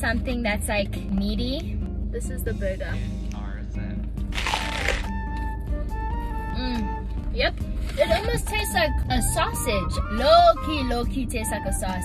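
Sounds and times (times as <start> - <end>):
background music sustained notes: 0.0 - 12.0
crunchy bite into a bun: 4.3 - 5.2.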